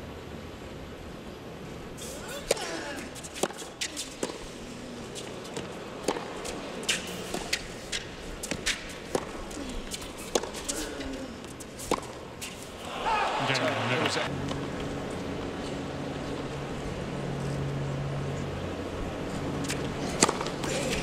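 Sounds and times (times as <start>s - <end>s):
tennis racquet strikes: 2.0s - 13.0s, 19.6s - 21.0s
tennis ball bounces: 2.3s - 12.8s, 19.6s - 21.0s.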